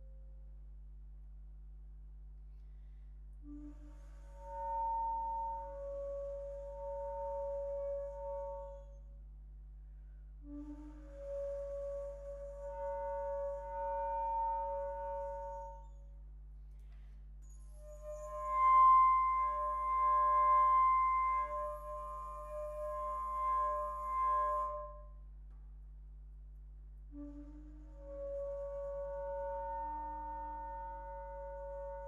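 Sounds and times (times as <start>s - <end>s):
flute multiphonic: 3.4s - 9.3s, 10.0s - 25.3s, 27.0s - 32.0s.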